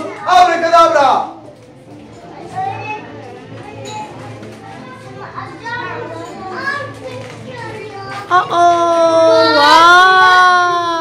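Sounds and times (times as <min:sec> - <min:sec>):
young children chattering: 0:01.4 - 0:10.0.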